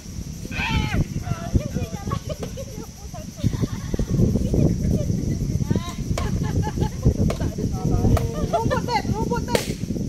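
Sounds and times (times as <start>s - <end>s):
people calling and chattering: 0.0s - 10.0s
loud noisy pop: 9.5s - 9.9s
sharp crack: 9.5s - 10.0s.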